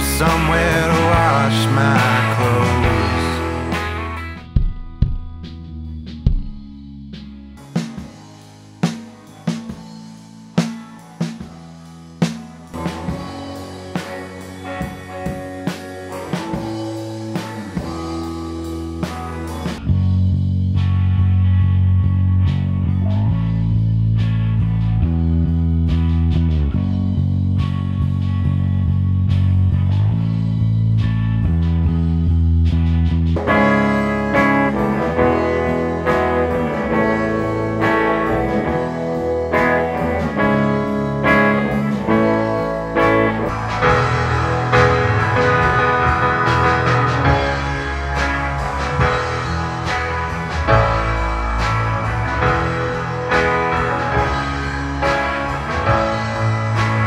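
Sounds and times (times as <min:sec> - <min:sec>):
deep bass guitar notes: 0:00.0 - 0:10.6, 0:11.6 - 0:57.0
drums and cymbals: 0:00.0 - 0:20.2, 0:32.8 - 0:57.0
piano chords: 0:33.4 - 0:57.0.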